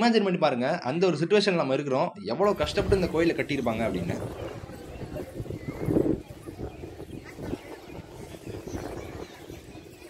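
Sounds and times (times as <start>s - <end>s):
faint voices: 2.4s - 10.0s.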